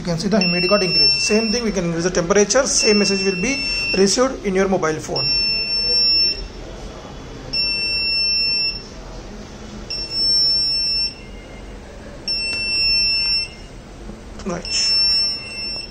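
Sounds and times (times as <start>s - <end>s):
high-pitched alarm buzzer beeps: 0.4s - 1.9s, 2.7s - 4.3s, 5.1s - 6.6s, 7.5s - 9.0s, 9.9s - 13.8s, 14.6s - 15.9s.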